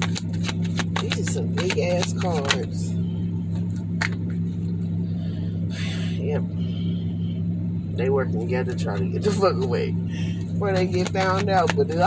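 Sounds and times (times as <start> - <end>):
low car cabin hum: 0.0 - 12.0
breathy sigh: 5.1 - 7.2.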